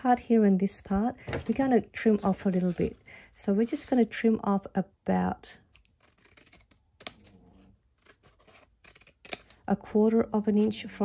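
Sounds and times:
scissors snipping paper: 5.6s - 9.7s.

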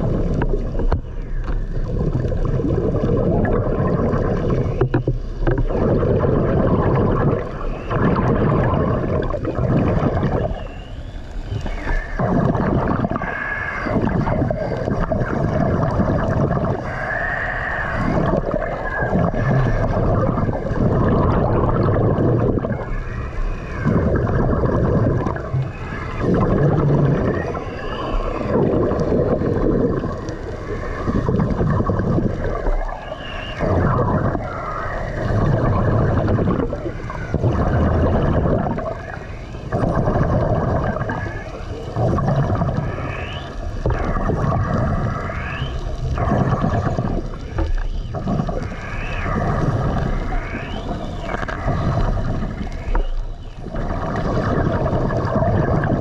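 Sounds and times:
bubbling exhalations: 0.0s - 1.0s, 1.6s - 10.7s, 11.6s - 56.0s
diver breathing underwater: 11.5s - 56.0s.

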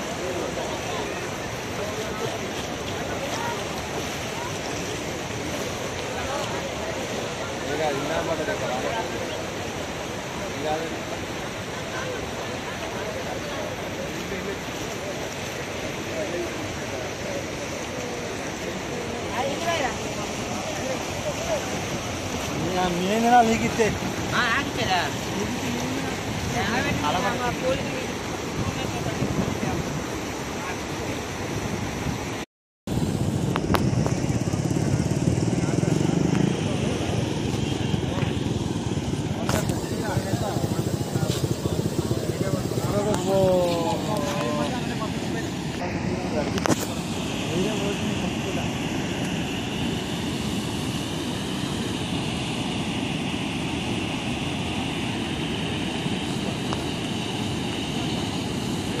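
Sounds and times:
floodwater rushing: 0.0s - 59.0s
wind buffeting microphone: 31.6s - 45.7s.

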